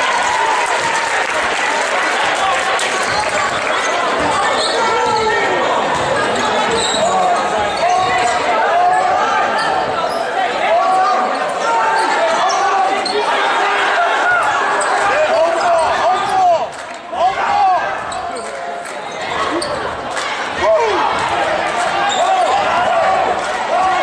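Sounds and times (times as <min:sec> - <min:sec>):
echoing shouting voices: 0:00.0 - 0:24.0.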